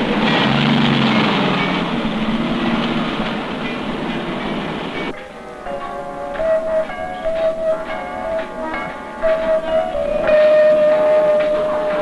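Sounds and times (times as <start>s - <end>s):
mechanical din of vehicles: 0.0s - 5.1s
music: 3.6s - 12.0s.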